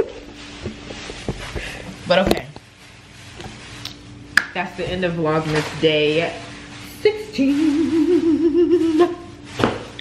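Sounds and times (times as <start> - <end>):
soft bumps and rustling: 0.2 - 3.8.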